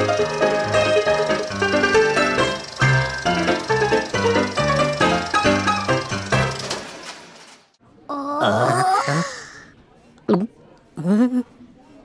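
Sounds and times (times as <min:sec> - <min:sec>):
cartoon character vocalizing: 0:08.1 - 0:09.7.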